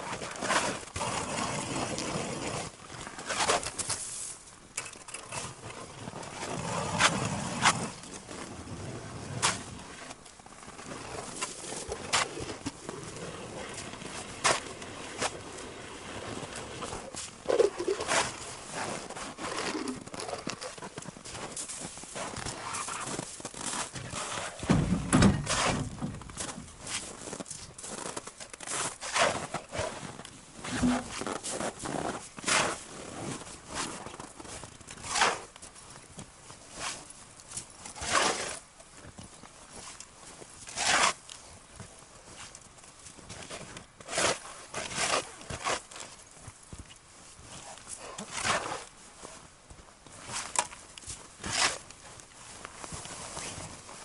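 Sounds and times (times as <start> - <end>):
shovel scraping snow and ice: 0.0 - 4.4, 5.2 - 35.5, 36.7 - 38.6, 39.7 - 41.3, 43.4 - 46.2, 47.5 - 49.5, 50.2 - 52.2, 52.8 - 54.0
heavy thump: 24.7 - 26.2.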